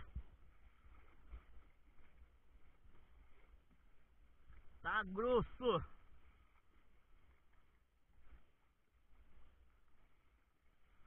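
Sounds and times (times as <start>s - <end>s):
faint low rumble: 0.0s - 11.0s.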